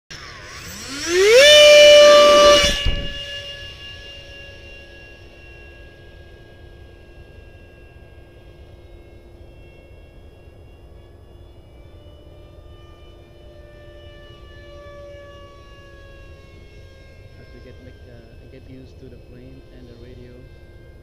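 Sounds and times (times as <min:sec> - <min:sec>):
electric ducted fan whine: 0:00.1 - 0:21.0
brief thump: 0:02.5 - 0:03.3.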